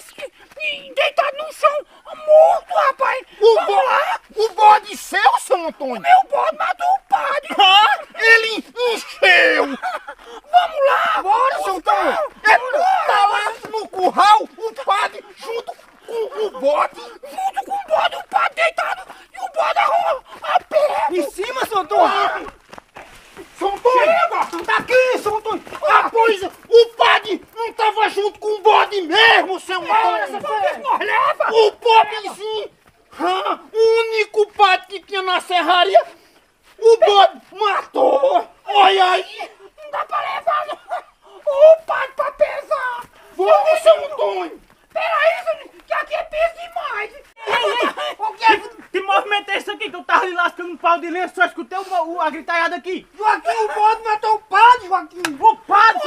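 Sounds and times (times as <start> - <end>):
men talking excitedly: 0.0 - 56.0.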